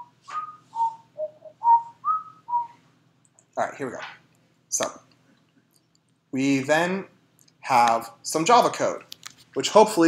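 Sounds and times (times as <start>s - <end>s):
person whistling a tune: 0.0s - 2.8s.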